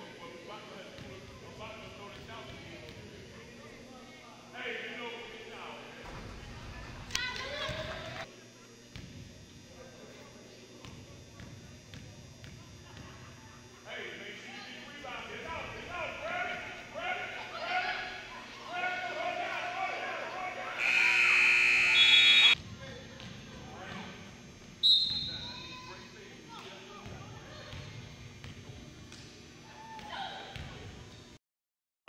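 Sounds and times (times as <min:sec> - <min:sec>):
gym background noise: 0:00.0 - 0:31.4
scoreboard buzzer blast: 0:20.8 - 0:22.6.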